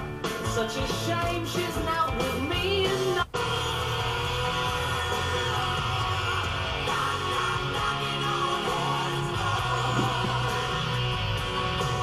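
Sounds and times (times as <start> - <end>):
song on car radio: 0.0 - 12.0.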